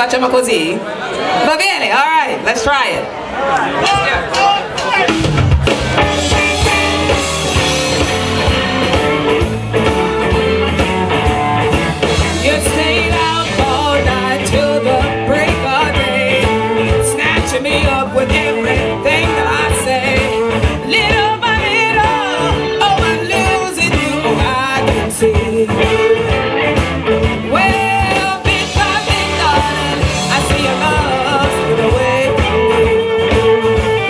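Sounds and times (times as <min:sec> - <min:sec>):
blues band playing: 0:00.0 - 0:34.0
woman singing: 0:12.2 - 0:26.4, 0:27.4 - 0:34.0.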